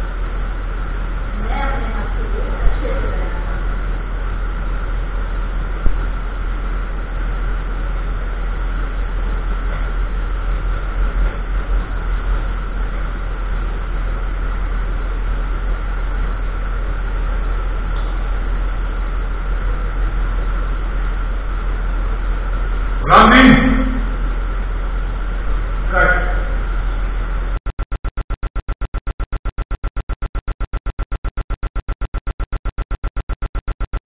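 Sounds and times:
low hum: 0:00.0 - 0:34.0.

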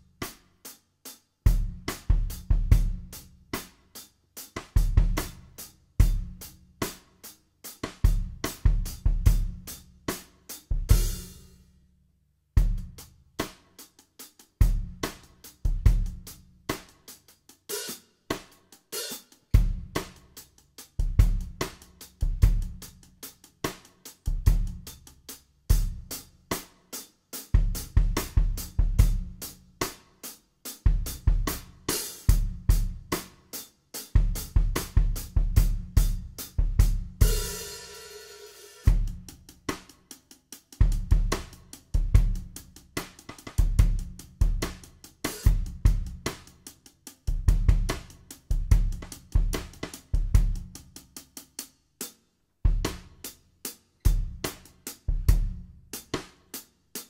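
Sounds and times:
drum-kit groove: 0:00.0 - 0:11.8, 0:12.5 - 0:57.0.

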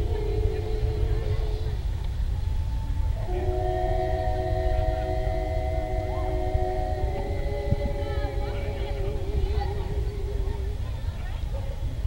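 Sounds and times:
low rumble: 0:00.0 - 0:11.5
women singing in close harmony: 0:00.0 - 0:11.5.

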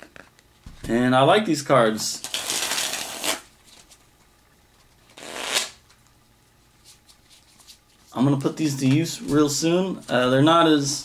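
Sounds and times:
playing cards riffle-shuffled: 0:02.2 - 0:04.1, 0:04.8 - 0:05.8, 0:06.8 - 0:08.6.

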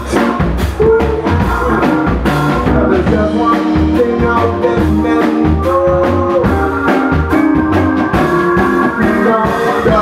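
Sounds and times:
person singing: 0:00.0 - 0:10.0
rock band playing loudly: 0:00.0 - 0:10.0.

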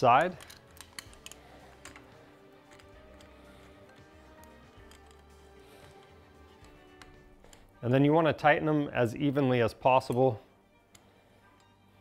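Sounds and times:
faint background music: 0:00.0 - 0:12.0
light metal clicks and taps: 0:00.1 - 0:07.7.

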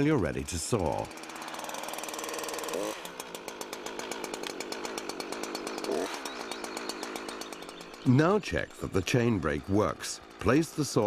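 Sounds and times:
chainsaw idling and revving: 0:00.0 - 0:11.0.

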